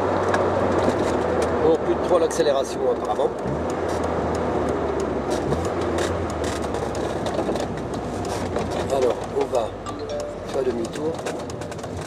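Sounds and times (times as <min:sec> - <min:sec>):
car engine hum: 0:00.0 - 0:12.0
road noise inside car: 0:00.0 - 0:12.0.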